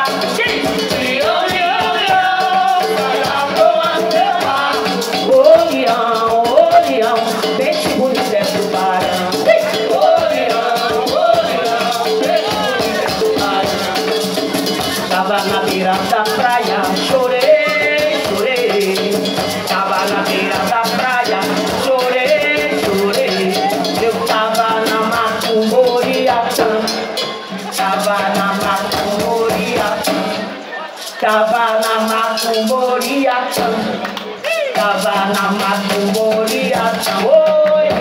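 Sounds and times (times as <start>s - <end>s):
hand drums: 0.0s - 38.0s
person singing: 0.0s - 38.0s
shaker: 0.0s - 38.0s.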